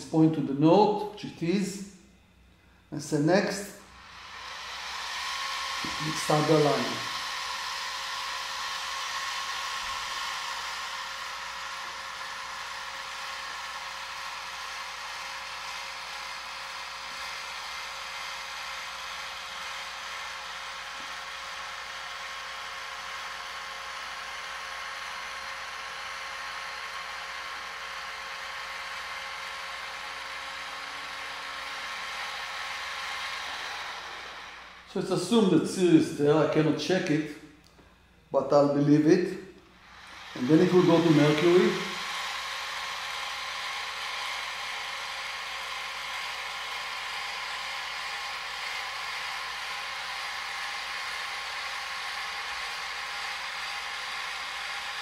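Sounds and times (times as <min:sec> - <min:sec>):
telescope mount motors whining: 0:03.8 - 0:35.6, 0:39.7 - 0:55.0.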